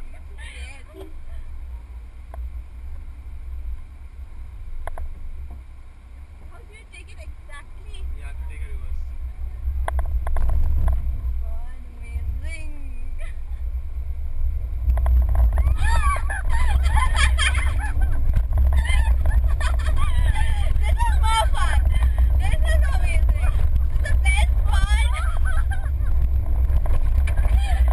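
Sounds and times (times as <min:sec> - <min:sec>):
car engine rumble in cabin: 0:00.0 - 0:27.9.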